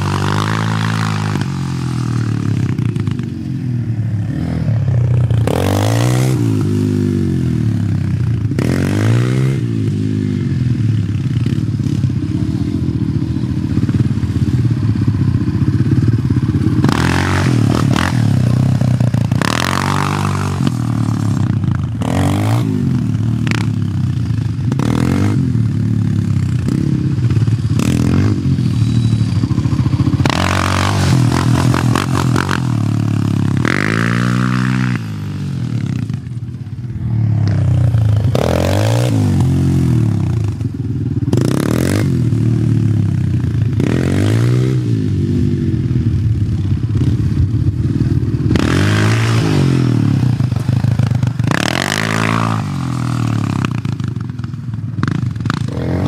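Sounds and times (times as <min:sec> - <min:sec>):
quad engine revving: 0:00.0 - 0:03.3, 0:04.2 - 0:36.3, 0:37.0 - 0:46.3, 0:46.9 - 0:54.4, 0:55.0 - 0:56.0.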